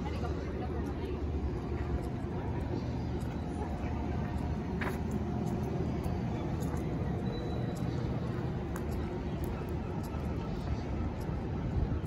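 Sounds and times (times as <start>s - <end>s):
faint voices of passers-by: 0.0s - 12.0s
low street rumble: 0.0s - 12.0s.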